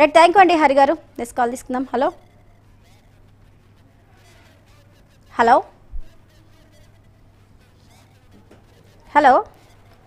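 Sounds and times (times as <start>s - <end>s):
phone line hum and hiss: 0.0s - 10.0s.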